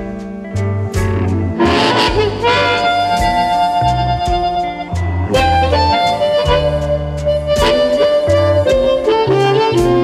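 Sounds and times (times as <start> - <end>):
drums: 0.0 - 10.0
walking bass: 0.0 - 10.0
amplified harmonica lead: 0.8 - 10.0.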